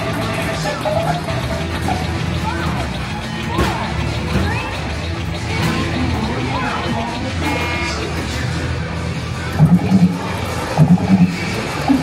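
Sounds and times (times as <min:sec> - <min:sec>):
background music: 0:00.0 - 0:12.0
electronic arcade game sounds: 0:00.0 - 0:12.0
runs of low notes: 0:09.6 - 0:12.0.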